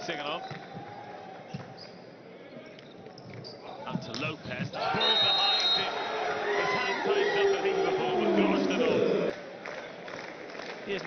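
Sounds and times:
indoor arena crowd noise: 0.0s - 11.0s.

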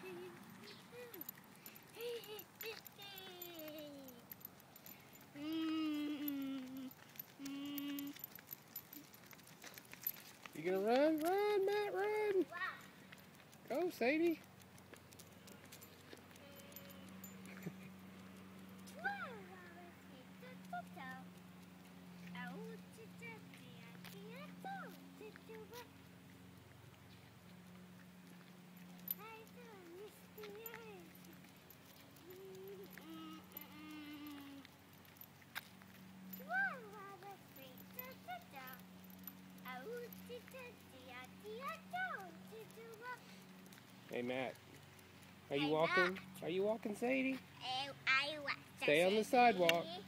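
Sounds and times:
person humming: 5.4s - 8.2s, 32.3s - 34.6s.

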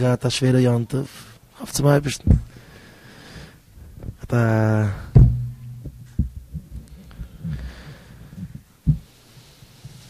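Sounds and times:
dull low thumps: 2.2s - 2.6s, 3.7s - 9.2s
sharp knock: 5.1s - 6.3s.

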